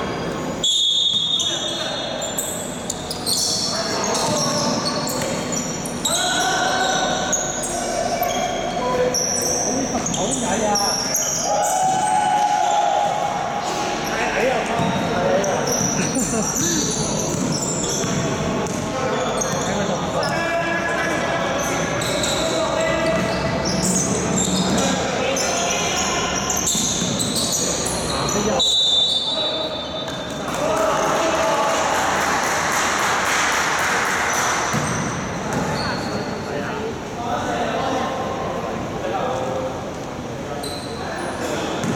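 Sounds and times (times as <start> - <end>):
echoing voices in hall: 0.0 - 41.9
basketball bouncing on court: 14.7 - 19.8, 23.0 - 24.9, 26.6 - 27.7, 34.7 - 35.8.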